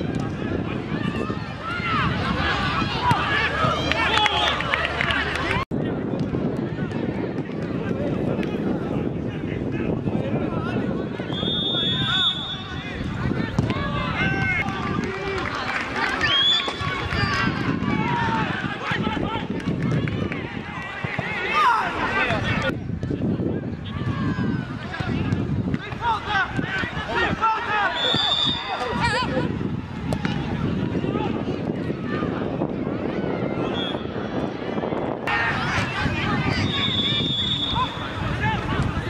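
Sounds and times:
players shouting: 0:00.0 - 0:05.6, 0:10.4 - 0:22.7, 0:23.8 - 0:39.0.

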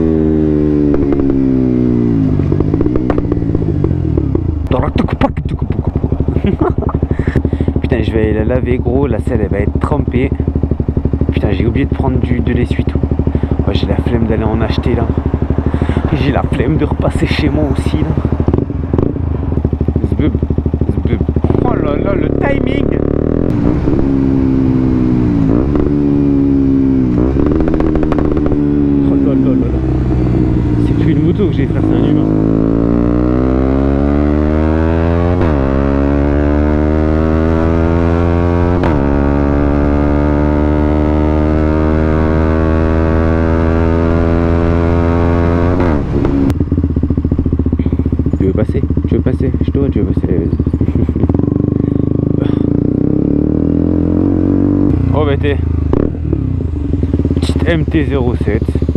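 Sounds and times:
motorcycle engine accelerating: 0:00.0 - 0:58.9.

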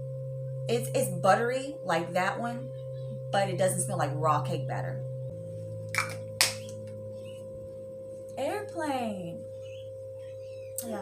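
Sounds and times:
faint steady tone: 0:00.0 - 0:11.0
low hum: 0:00.0 - 0:11.0.

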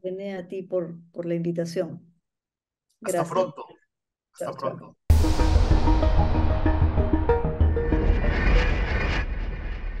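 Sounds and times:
logo sting whoosh: 0:05.1 - 0:10.0.

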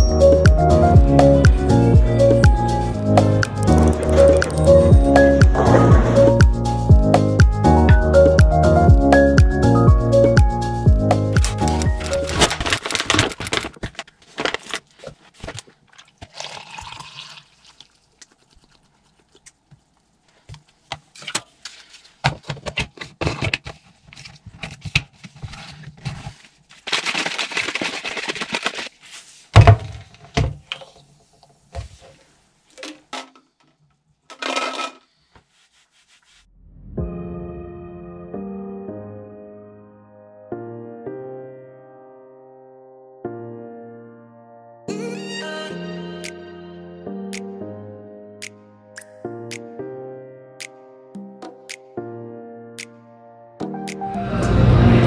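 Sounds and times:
electronic music: 0:00.0 - 0:12.4, 0:53.6 - 0:55.0
shaker bottle being shaken: 0:11.4 - 0:13.7, 0:26.2 - 0:29.4
water running: 0:15.8 - 0:19.4.

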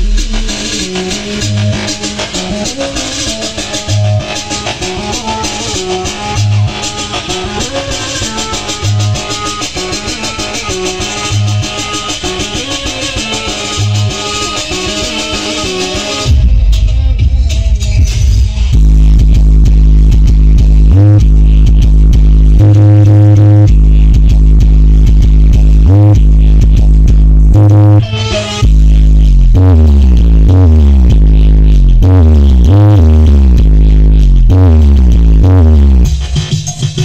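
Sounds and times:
bass-heavy electronic music: 0:00.0 - 0:37.0.

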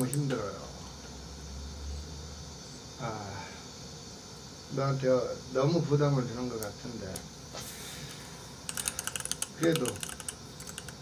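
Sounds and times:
computer keyboard typing: 0:08.7 - 0:11.0.

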